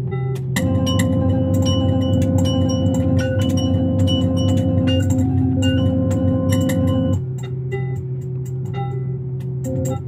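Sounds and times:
low drone: 0.6 - 7.5.

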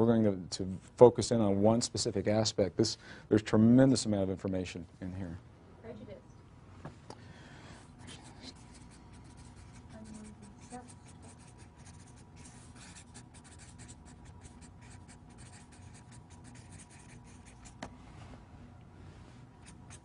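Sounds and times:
marker scratching on paper: 8.0 - 17.9, 19.6 - 20.0.

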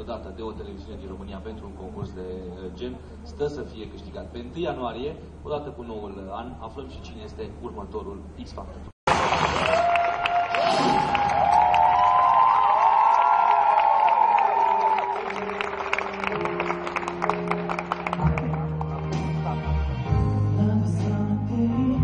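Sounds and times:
audience cheering and clapping: 9.1 - 19.4
slow instrumental song intro: 14.6 - 22.0.

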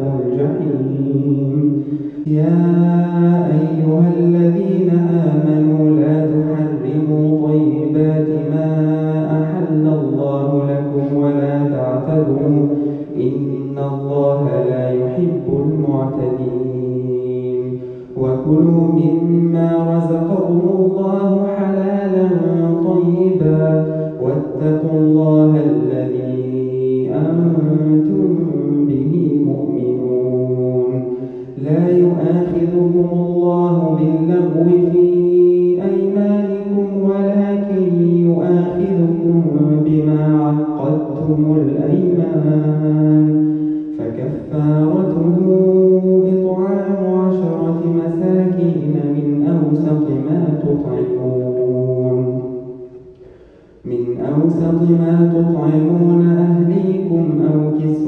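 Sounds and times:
man reciting melodically: 0.0 - 58.0.

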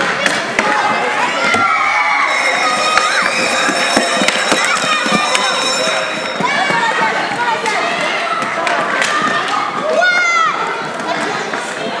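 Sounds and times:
hockey stick clack: 0.0 - 1.6, 2.9 - 9.9
children shouting: 0.0 - 12.0
skate wheels on hard floor: 0.0 - 12.0.

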